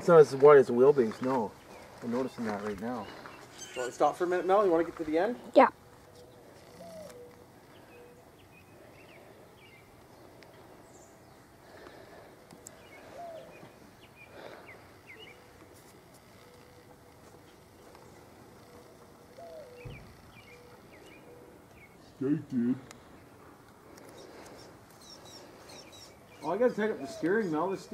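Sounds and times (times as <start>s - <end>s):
distant bird chirps: 0.0s - 27.9s.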